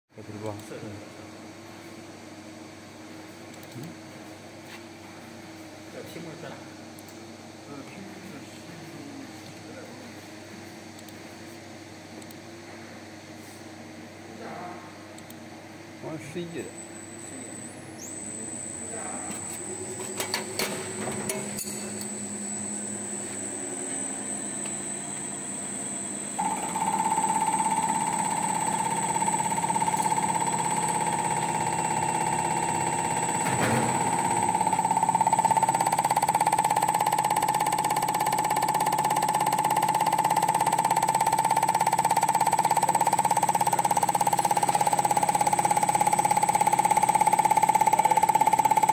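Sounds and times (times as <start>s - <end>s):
steady high machine whine: 0.2s - 48.9s.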